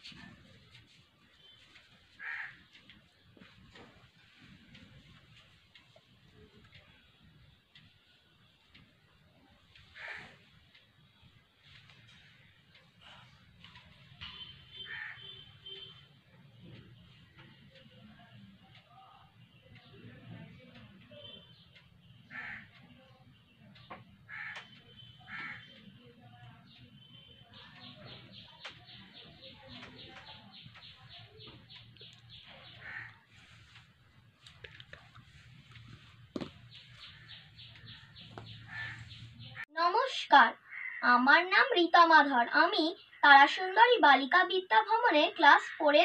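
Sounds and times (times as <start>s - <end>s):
crow cawing: 2.2s - 2.7s, 10.0s - 10.3s, 14.8s - 15.4s, 22.3s - 22.7s, 24.3s - 24.7s, 25.3s - 25.7s, 32.7s - 33.2s, 38.7s - 39.2s, 40.6s - 41.0s
bird calling: 36.3s - 39.6s.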